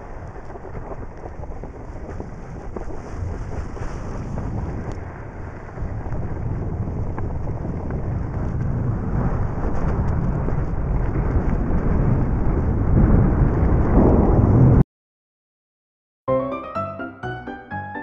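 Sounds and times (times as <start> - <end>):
skis scraping over snow: 0.0 - 12.2
wind buffeting microphone: 0.0 - 14.8.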